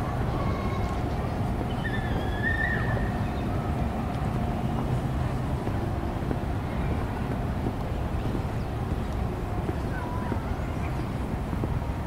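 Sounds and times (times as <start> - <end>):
low rumbling outdoor noise: 0.0 - 12.0.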